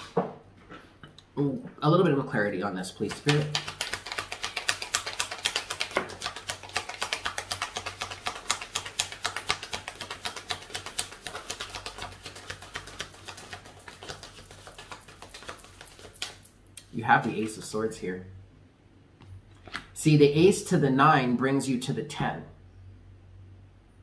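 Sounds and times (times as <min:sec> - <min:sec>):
cards being shuffled: 0:03.0 - 0:16.5.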